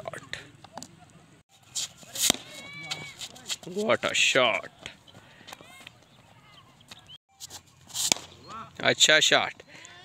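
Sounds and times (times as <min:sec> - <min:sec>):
faint voices calling out: 0:02.1 - 0:03.6
people shouting: 0:02.3 - 0:03.2.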